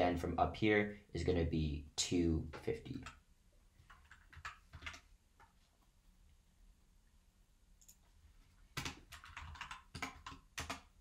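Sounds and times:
computer keyboard typing: 3.8s - 5.5s, 8.6s - 11.0s.

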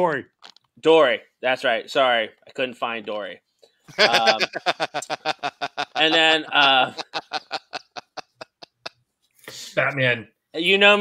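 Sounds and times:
man snickering: 3.9s - 8.9s.

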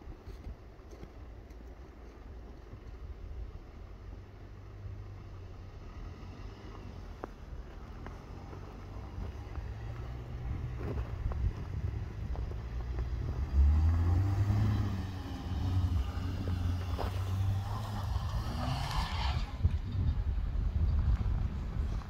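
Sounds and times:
car engine revving: 5.6s - 19.9s.

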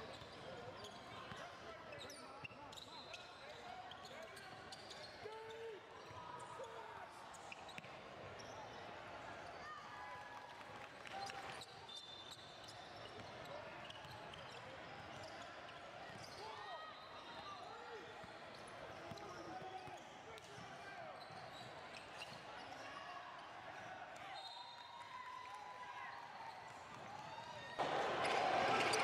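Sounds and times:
spectators' voices: 26.0s - 29.0s.

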